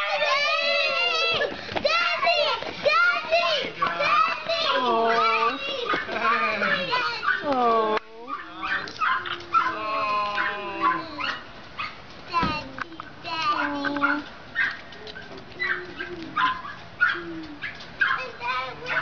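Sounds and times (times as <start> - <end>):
high-pitched excited cries and whines: 0.0 - 11.5, 12.3 - 14.3, 15.6 - 19.0.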